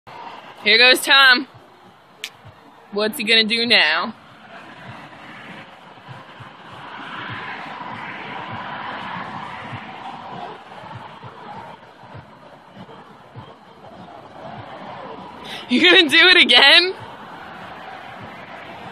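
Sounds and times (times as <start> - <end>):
indistinct background chatter: 0.1 - 18.9.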